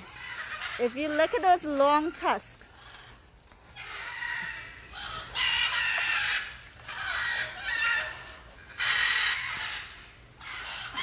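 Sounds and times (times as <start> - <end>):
macaws squawking: 0.0 - 11.0.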